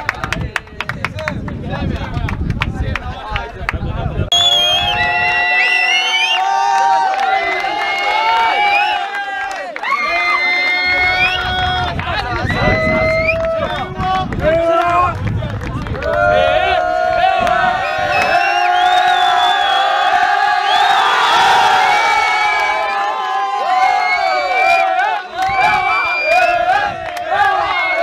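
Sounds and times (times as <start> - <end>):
crowd cheering and chanting: 1.6 - 28.0.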